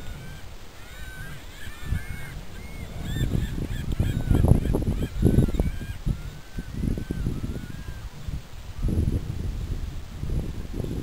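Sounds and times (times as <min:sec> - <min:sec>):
geese honking: 0:00.0 - 0:08.1.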